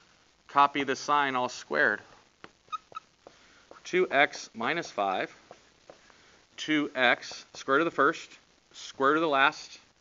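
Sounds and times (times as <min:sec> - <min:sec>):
marker squeaking on whiteboard: 0:02.6 - 0:03.9, 0:07.2 - 0:07.6.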